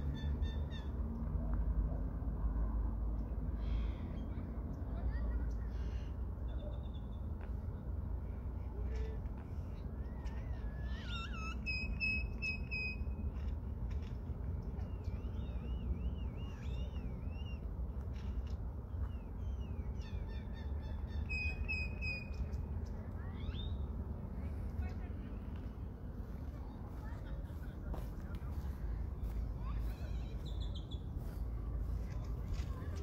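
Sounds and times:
birds chirping and whistling: 0:10.1 - 0:13.1, 0:14.7 - 0:17.7, 0:19.0 - 0:22.7
steady low rumble: 0:22.3 - 0:33.0.

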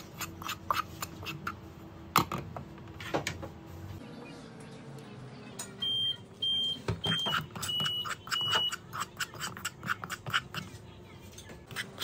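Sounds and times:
metal spoon scraping in a pan: 0:07.3 - 0:12.0.

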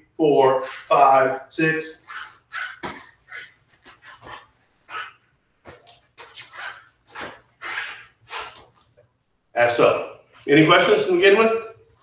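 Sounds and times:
sleeves swishing: 0:00.4 - 0:09.0.

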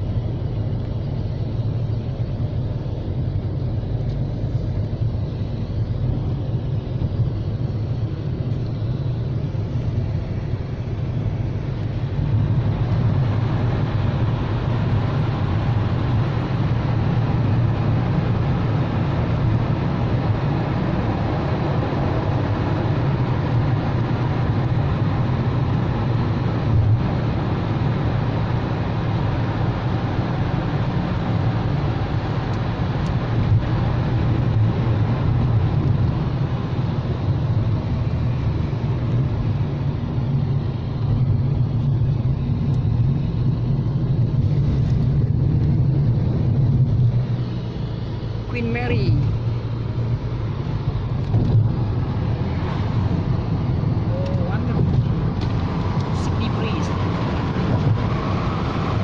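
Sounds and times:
car cabin road noise: 0:00.0 - 0:59.0.

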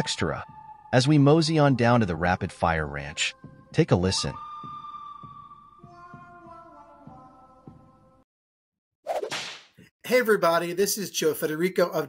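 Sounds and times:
whip-crack sound effect: 0:09.1 - 0:09.8.

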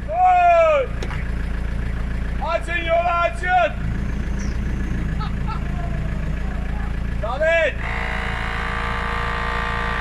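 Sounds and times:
vehicle engine low rumble: 0:00.0 - 0:10.0.

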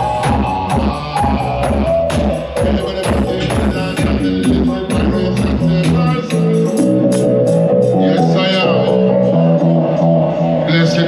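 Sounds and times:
deep bass: 0:00.0 - 0:11.0
dub music through sound system: 0:00.0 - 0:11.0.

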